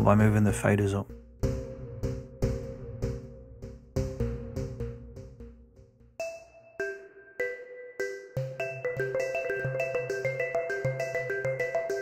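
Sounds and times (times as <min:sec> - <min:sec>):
synthesizer arpeggio notes: 0:00.0 - 0:12.0.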